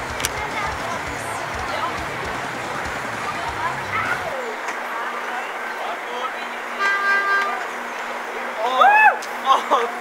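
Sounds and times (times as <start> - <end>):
steady low hum: 0.0 - 4.4
street noise: 0.0 - 10.0
vehicle horn toot: 6.8 - 7.7.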